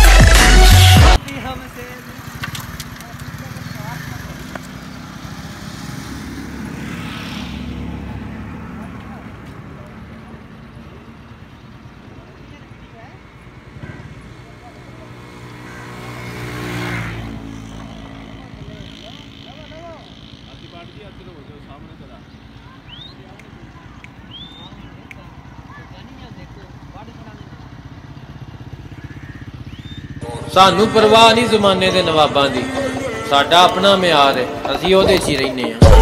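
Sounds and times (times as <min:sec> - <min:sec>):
background music: 0:00.0 - 0:01.2, 0:30.2 - 0:36.0
motorcycle engine idling: 0:01.2 - 0:05.6, 0:17.5 - 0:36.0.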